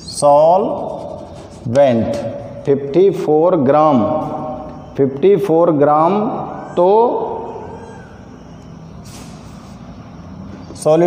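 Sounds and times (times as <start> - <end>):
duster rubbing chalkboard: 0.6 - 2.3.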